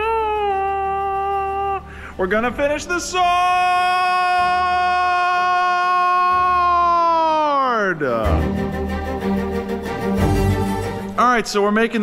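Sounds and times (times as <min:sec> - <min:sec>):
man singing high note: 0:00.0 - 0:08.6
music with bowed strings: 0:08.2 - 0:11.4.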